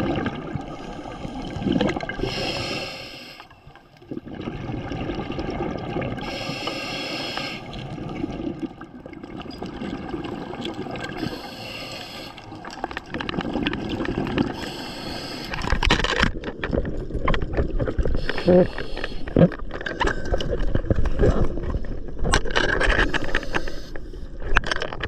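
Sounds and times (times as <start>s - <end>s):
bubbles gurgling: 0.0s - 2.9s, 3.6s - 11.7s, 12.4s - 22.3s
regulator hissing inhale: 2.2s - 3.6s, 6.2s - 7.8s, 11.2s - 12.5s, 14.6s - 15.7s, 18.2s - 19.4s, 23.2s - 24.4s.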